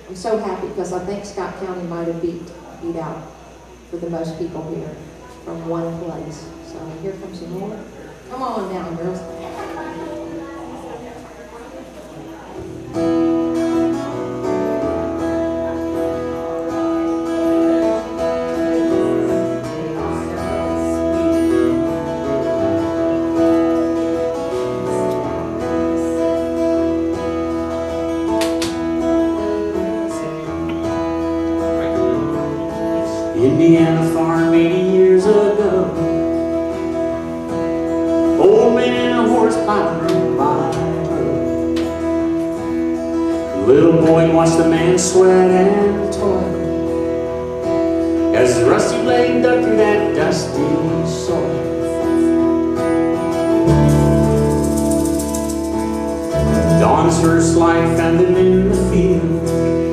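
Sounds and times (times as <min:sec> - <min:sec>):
strummed acoustic guitar: 0:00.0 - 0:59.9
electric bass guitar: 0:12.6 - 0:59.9
person singing: 0:48.2 - 0:52.7, 0:55.2 - 0:59.9.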